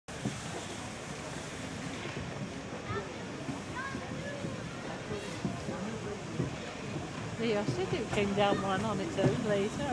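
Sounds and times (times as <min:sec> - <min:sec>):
faint voices talking: 0:00.1 - 0:09.9.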